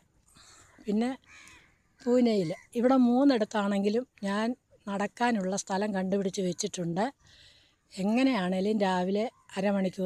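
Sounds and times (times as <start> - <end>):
woman speaking: 0.8 - 1.3, 2.0 - 7.2, 8.0 - 10.0.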